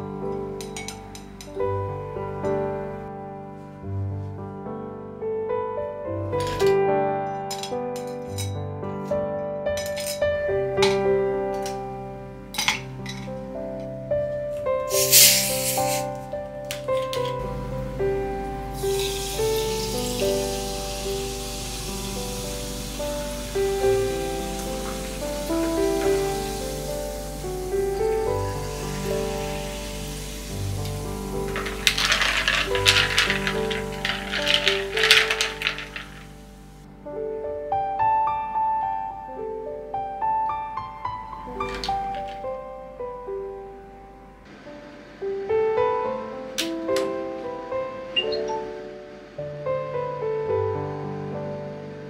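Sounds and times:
soft piano music: 0.0 - 52.0
faint carbonated fizz: 14.9 - 16.1, 18.7 - 36.8
ice cubes clinking in glass: 27.9 - 36.4.

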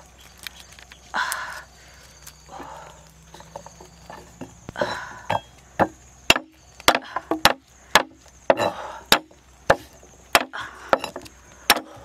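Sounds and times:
garlic skins rustling: 0.0 - 6.9.

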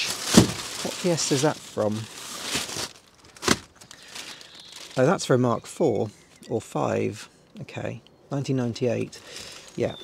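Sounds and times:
plastic bag crinkling: 0.0 - 5.4.

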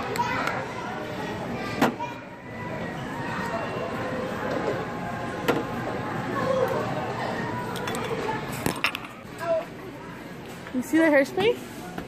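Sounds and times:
children's voices: 0.0 - 5.3, 6.0 - 10.2
indistinct chatter: 0.0 - 12.0.

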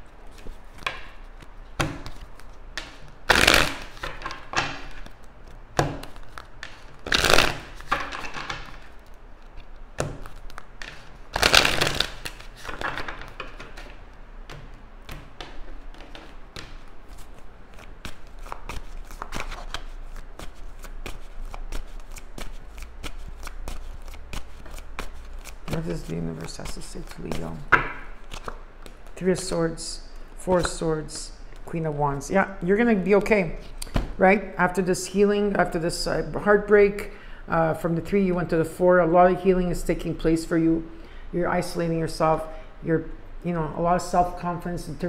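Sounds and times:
cards being shuffled: 0.2 - 29.5.

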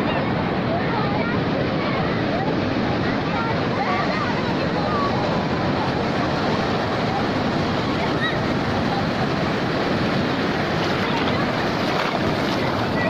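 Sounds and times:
sea surf breaking on shore: 0.0 - 13.0.

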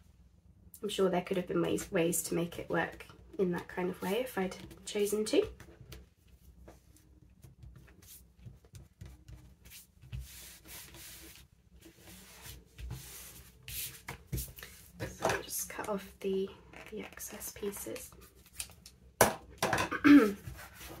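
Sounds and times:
hands rubbing paper: 6.2 - 15.0.

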